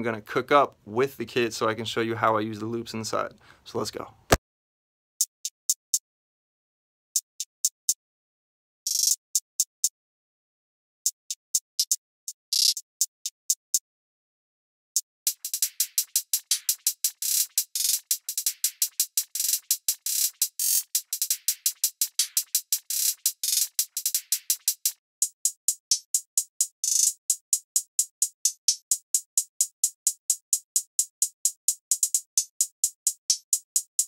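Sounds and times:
programmed hi-hat patterns: 0:15.2 - 0:34.0.

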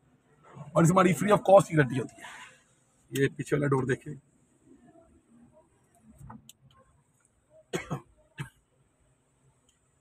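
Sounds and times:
person coughing: 0:07.7 - 0:08.6.

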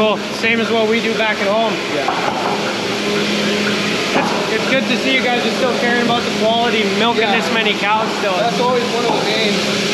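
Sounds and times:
milking equipment hum: 0:00.0 - 0:09.9
ventilation hiss: 0:00.0 - 0:09.9.

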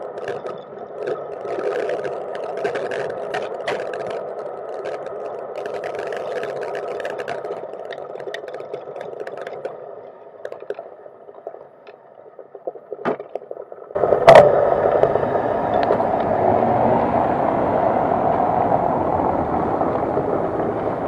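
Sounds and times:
bike rumbling over cobblestones: 0:00.0 - 0:09.5, 0:14.0 - 0:21.0
bike rattling and clicking: 0:00.0 - 0:12.0
bike tyres rolling over paving: 0:00.0 - 0:12.0, 0:13.9 - 0:21.0.

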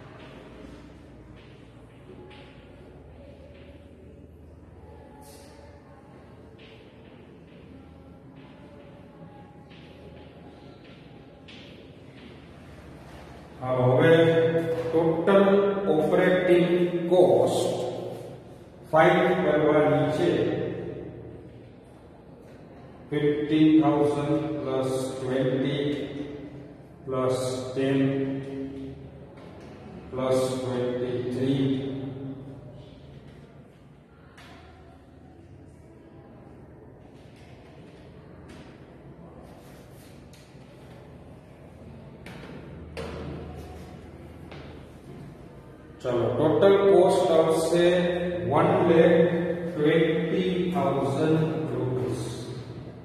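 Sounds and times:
man talking in monotone: 0:13.1 - 0:21.2, 0:23.0 - 0:29.0, 0:29.9 - 0:32.8, 0:45.8 - 0:53.0.

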